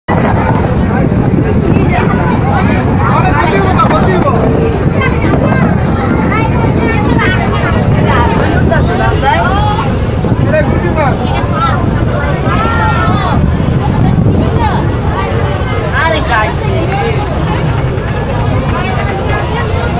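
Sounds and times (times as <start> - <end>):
moving boat noise: 0.1 - 19.9
people talking over one another: 0.1 - 19.9.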